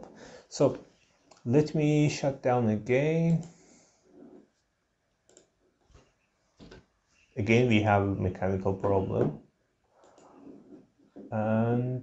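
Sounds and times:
faint computer mouse clicks: 5.3s - 5.5s.

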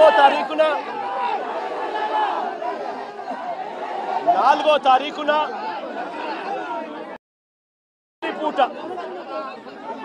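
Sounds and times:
crowd voices: 0.0s - 7.2s, 8.2s - 10.0s.

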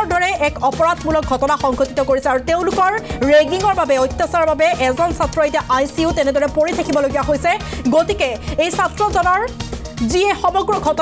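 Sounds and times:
background music: 0.0s - 11.0s
person narrating news: 0.0s - 11.0s.

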